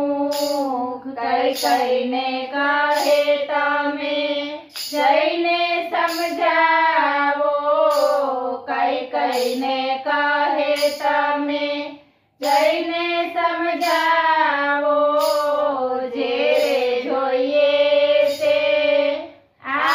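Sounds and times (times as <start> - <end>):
women singing devotional song: 0.0 - 19.9.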